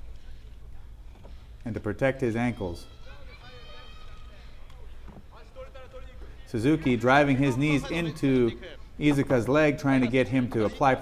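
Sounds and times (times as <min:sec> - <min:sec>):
hall background noise: 0:00.0 - 0:11.0
distant voices shouting: 0:02.5 - 0:09.5.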